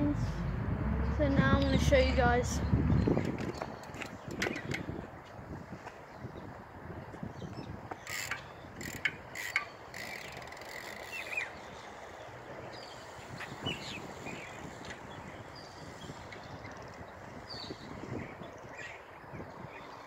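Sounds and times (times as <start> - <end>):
bike freewheel hub ratcheting: 8.0 - 11.5.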